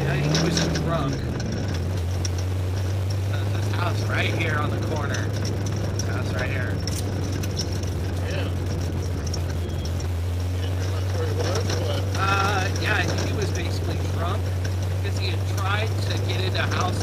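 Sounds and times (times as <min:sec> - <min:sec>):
car engine low drone: 0:00.0 - 0:17.0.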